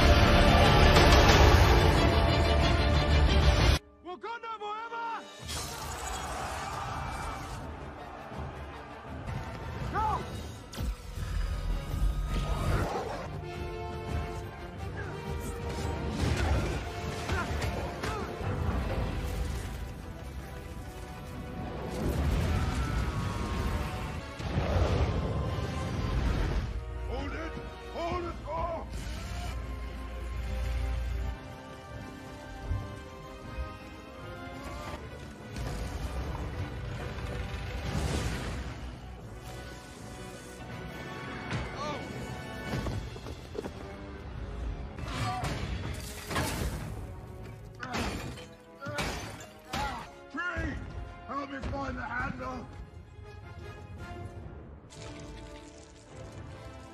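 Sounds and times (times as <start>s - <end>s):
orchestral music: 0.0s - 56.9s.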